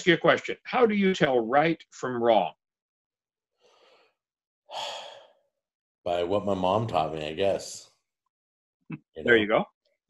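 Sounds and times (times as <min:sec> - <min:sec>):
faint breath: 0:03.6 - 0:05.5
man sighing: 0:04.7 - 0:05.4.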